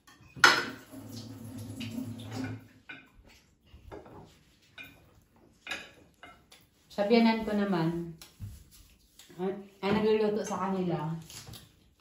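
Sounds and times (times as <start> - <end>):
cutlery knocking on a plate: 0.0 - 0.8.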